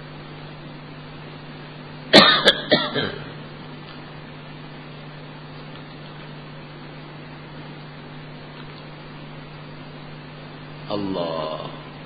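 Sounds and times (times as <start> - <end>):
low hum and hiss: 0.0 - 12.0
person coughing: 2.1 - 3.4.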